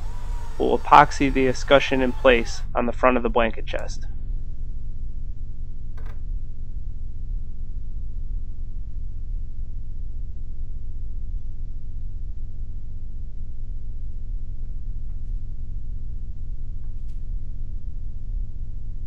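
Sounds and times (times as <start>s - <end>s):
low hum and rumble: 0.0s - 19.0s.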